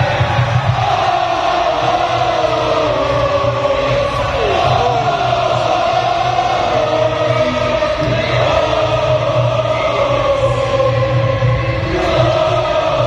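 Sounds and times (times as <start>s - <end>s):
crowd chanting in unison: 0.0s - 13.0s.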